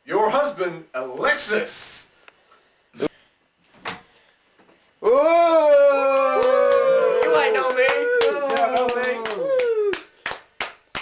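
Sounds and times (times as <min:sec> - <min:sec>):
audience cheering voices: 0:05.1 - 0:10.0
hand claps: 0:06.4 - 0:11.0.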